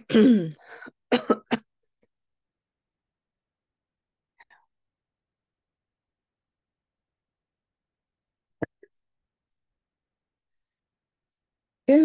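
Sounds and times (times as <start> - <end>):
woman coughing hoarsely: 0.0 - 1.7.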